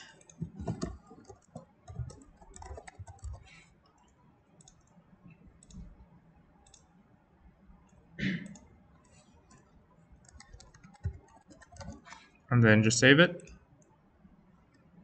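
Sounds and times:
computer keyboard typing: 0.0 - 5.9, 6.6 - 6.9, 9.5 - 12.4
mouse clicks: 6.6 - 6.9.

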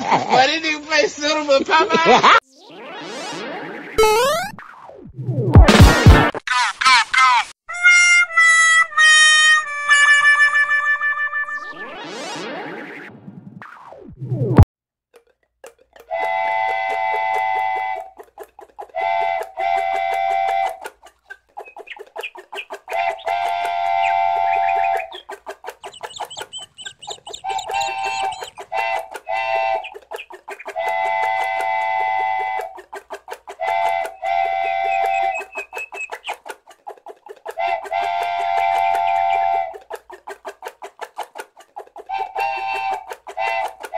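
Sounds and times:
train whistle blasts: 16.1 - 18.1, 19.0 - 20.8, 22.9 - 25.0, 27.8 - 29.8, 30.8 - 32.8, 33.6 - 35.4, 37.6 - 39.7.

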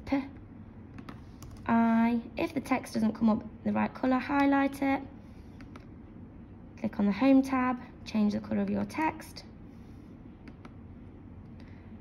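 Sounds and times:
computer keyboard keystrokes: 0.9 - 1.6, 5.6 - 5.9, 10.4 - 10.8.

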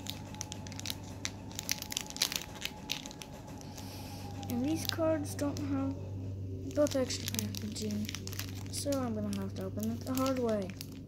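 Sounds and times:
foil wrapper crinkling and tearing: 0.0 - 5.7, 6.7 - 11.0.

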